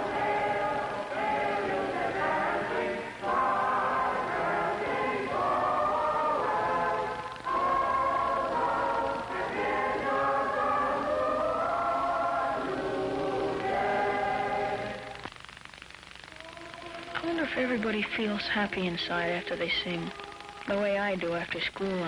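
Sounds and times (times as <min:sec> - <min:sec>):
children's choir singing: 0:00.0 - 0:15.2.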